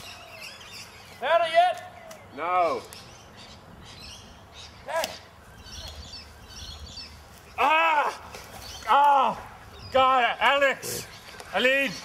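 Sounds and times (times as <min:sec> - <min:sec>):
small birds twittering: 0:00.0 - 0:12.0.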